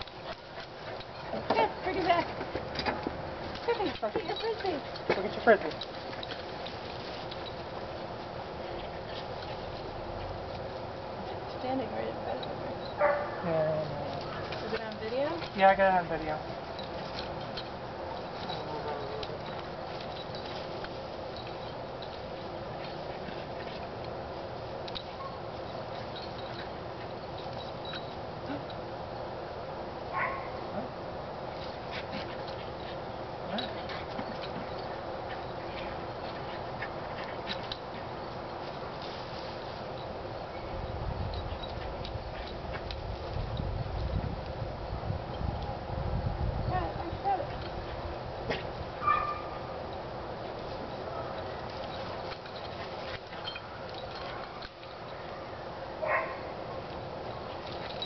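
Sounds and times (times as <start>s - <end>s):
outdoor background hiss: 0.0s - 58.0s
small dog barking: 13.0s - 13.4s, 30.1s - 30.6s, 49.0s - 49.6s, 56.0s - 56.5s.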